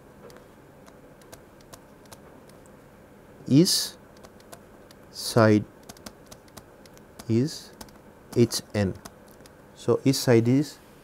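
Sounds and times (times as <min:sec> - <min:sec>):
stylus tapping on a tablet: 0:05.8 - 0:09.5.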